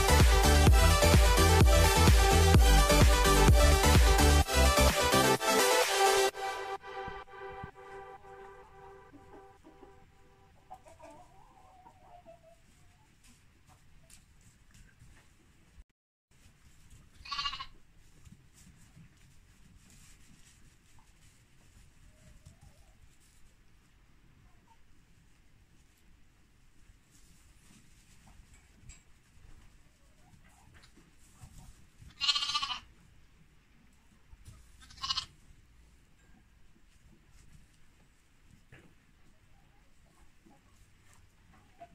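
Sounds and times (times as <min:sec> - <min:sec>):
lamb bleating: 0:17.2 - 0:17.7, 0:32.1 - 0:32.9, 0:34.8 - 0:35.3.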